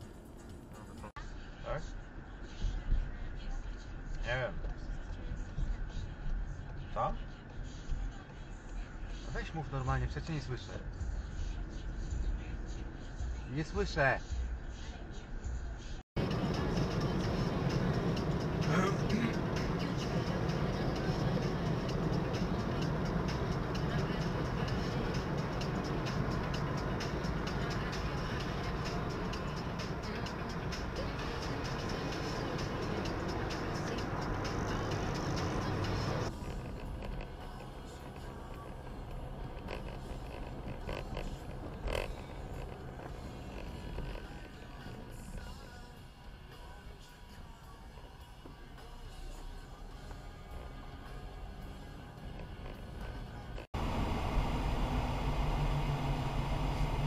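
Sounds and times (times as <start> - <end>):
music playing in car: 0.0 - 57.0
road and engine rumble: 0.0 - 57.0.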